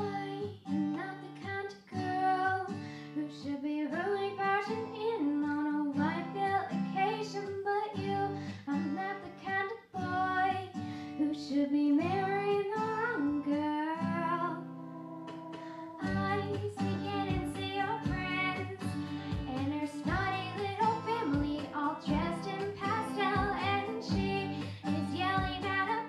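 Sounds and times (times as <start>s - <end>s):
guitar accompaniment: 0.0s - 26.0s
woman singing into microphone: 0.0s - 26.0s.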